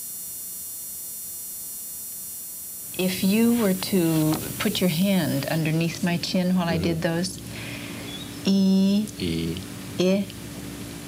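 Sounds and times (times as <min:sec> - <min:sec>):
high-pitched whine: 0:00.0 - 0:07.5
electrical buzz and hum: 0:00.0 - 0:11.0.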